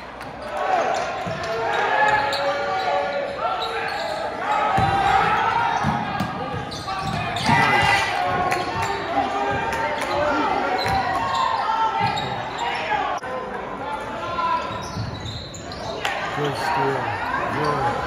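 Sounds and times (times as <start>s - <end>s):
basketball bouncing on court: 4.7s - 9.8s.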